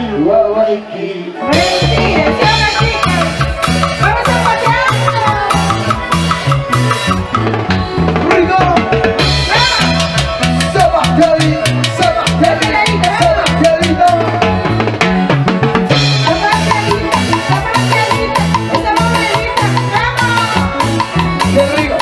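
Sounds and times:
festive dance band music: 0.0s - 22.0s.

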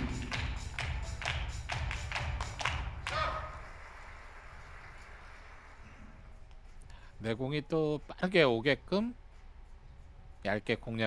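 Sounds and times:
spectators clapping: 0.0s - 6.0s
low hall hum: 0.0s - 11.0s.

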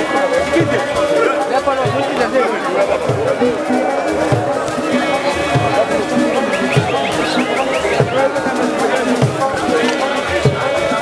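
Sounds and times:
crowd singing and calling out: 0.0s - 11.0s.

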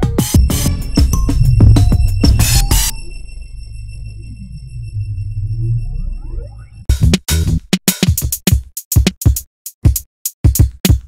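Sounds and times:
high-pitched electronic tones: 0.0s - 6.9s
sustained deep bass: 0.3s - 7.7s
gliding synth tones: 0.4s - 6.9s.

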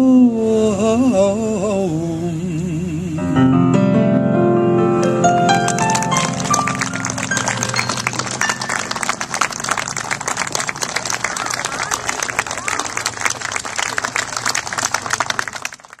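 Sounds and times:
audience applauding: 5.5s - 16.0s
voices calling out: 6.7s - 15.2s.

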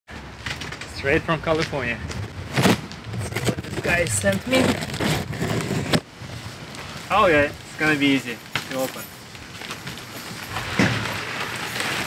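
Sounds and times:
sharp scrapes: 2.5s - 6.0s
bubble wrap crinkling: 6.4s - 12.0s.

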